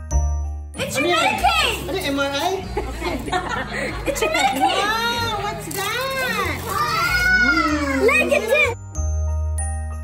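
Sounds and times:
children crying out excitedly: 0:06.0 - 0:08.8.

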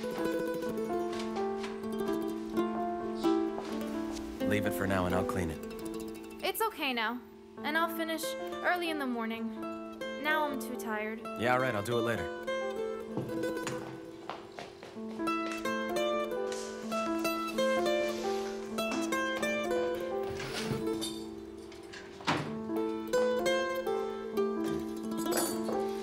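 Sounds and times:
plucked string melody: 0:00.0 - 0:26.0.

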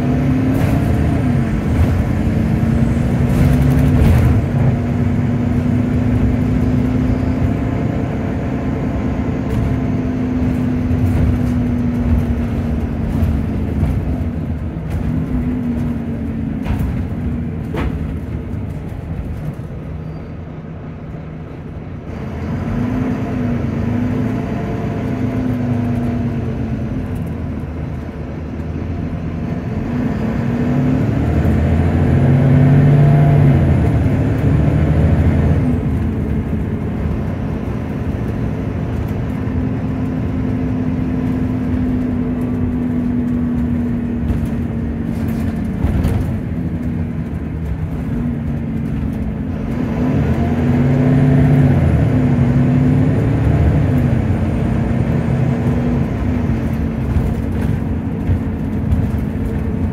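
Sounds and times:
bus engine running: 0:00.0 - 0:59.9.

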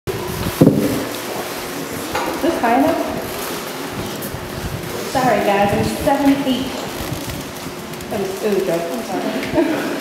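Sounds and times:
microphone handling rumble and knocks: 0:00.2 - 0:01.1, 0:02.1 - 0:08.2.

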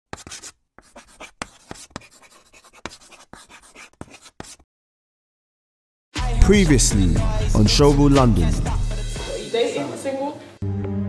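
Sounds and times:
pen scratching on paper: 0:00.1 - 0:04.6.

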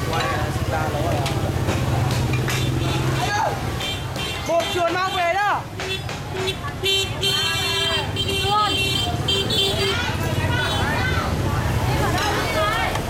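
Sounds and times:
motorbike engines running: 0:00.0 - 0:13.0
people talking: 0:00.0 - 0:13.0
horn honking: 0:03.7 - 0:10.9.

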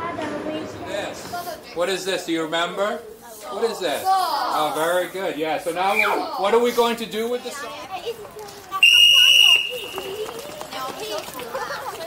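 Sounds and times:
faint children's voices: 0:00.0 - 0:05.2, 0:05.8 - 0:12.0
whistle blown: 0:05.9 - 0:06.2, 0:08.8 - 0:10.2.

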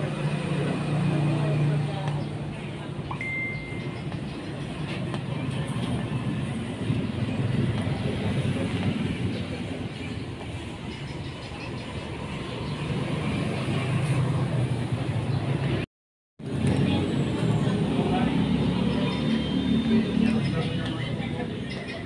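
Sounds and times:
vehicle engine and traffic rumble: 0:00.0 - 0:22.0
short high beep: 0:03.1 - 0:04.0.

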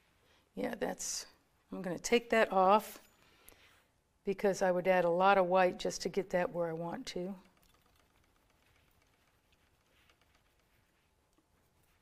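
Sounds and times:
palette knife scraping paint: 0:08.1 - 0:12.0.

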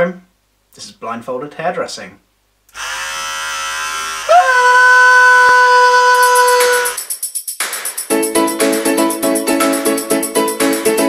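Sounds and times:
electric hair clippers buzzing: 0:02.7 - 0:04.5.

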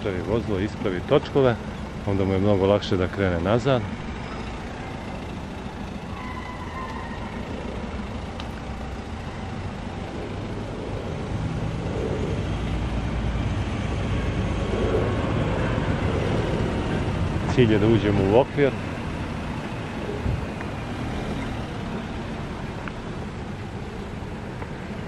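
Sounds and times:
car engine rumbling at low revs: 0:00.0 - 0:25.0.

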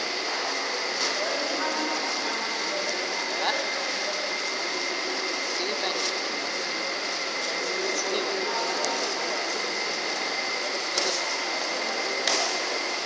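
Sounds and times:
indoor hall hum: 0:00.0 - 0:13.0.

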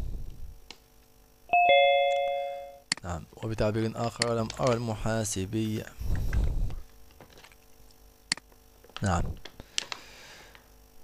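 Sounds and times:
two-note ding-dong chime: 0:01.5 - 0:02.8.

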